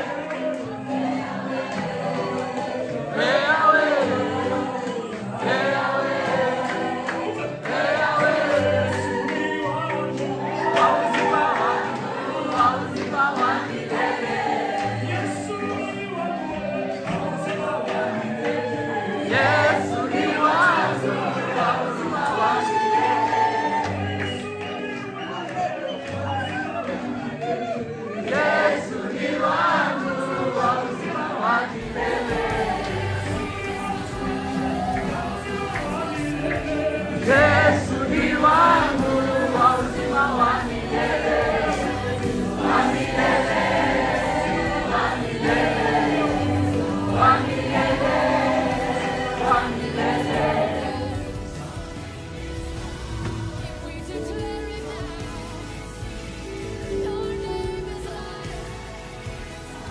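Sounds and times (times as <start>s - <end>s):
group of voices singing: 0.0s - 59.9s
lead singer: 0.0s - 59.9s.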